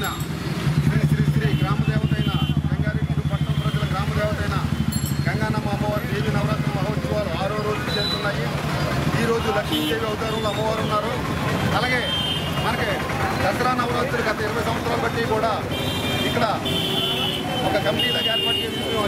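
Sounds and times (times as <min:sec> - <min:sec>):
background chatter: 0:00.0 - 0:19.0.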